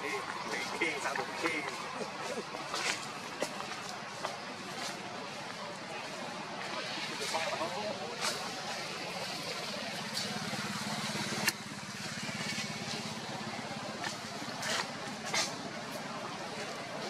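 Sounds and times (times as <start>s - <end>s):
low engine hum: 0.0s - 17.0s.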